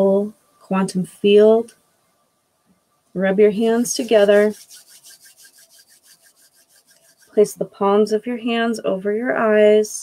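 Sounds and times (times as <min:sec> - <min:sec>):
hands rubbing together: 0:03.6 - 0:07.5.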